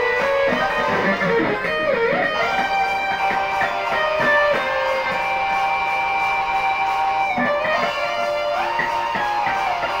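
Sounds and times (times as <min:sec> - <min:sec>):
electric guitar sustained note: 0:00.0 - 0:10.0
quick guitar melody runs: 0:00.0 - 0:10.0.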